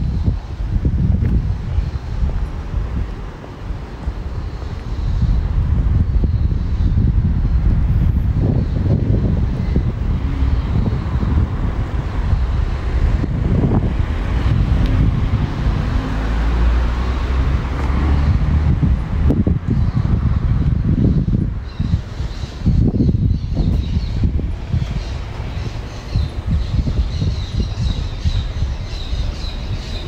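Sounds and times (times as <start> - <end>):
street traffic noise: 0.0 - 30.0
wind buffeting microphone: 0.0 - 30.0.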